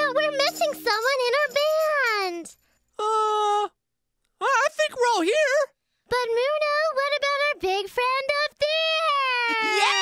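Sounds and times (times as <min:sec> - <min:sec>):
high-pitched cartoon voices: 0:08.9 - 0:10.0.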